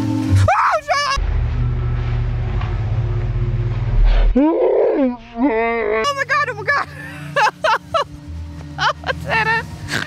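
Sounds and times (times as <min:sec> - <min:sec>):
deep growling roar: 0:01.2 - 0:06.0.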